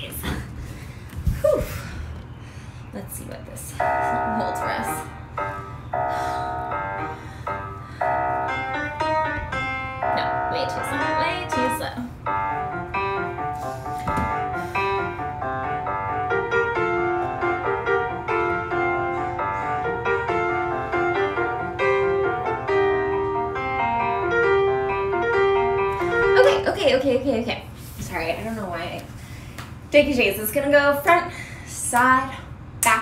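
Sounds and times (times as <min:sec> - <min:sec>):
piano chords: 0:03.7 - 0:27.5.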